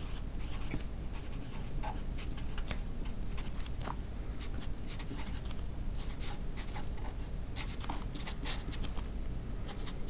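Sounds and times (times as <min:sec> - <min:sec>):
marker writing on paper: 0:00.0 - 0:02.7, 0:04.4 - 0:08.9
steady low hum: 0:00.0 - 0:10.0.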